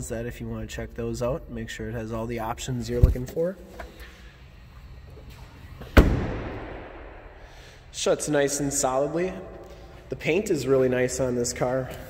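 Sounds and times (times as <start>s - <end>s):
car trunk lid slamming: 5.9s - 7.1s.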